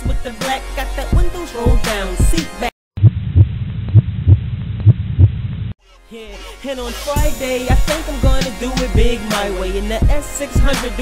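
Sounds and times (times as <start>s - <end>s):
heartbeat double thumps: 3.0s - 5.7s.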